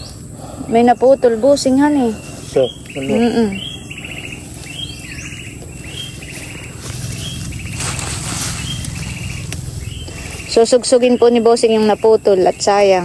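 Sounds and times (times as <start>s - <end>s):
insect chirping in buzzy pulses: 0.0s - 13.0s
rustling of plants and soil: 0.0s - 13.0s.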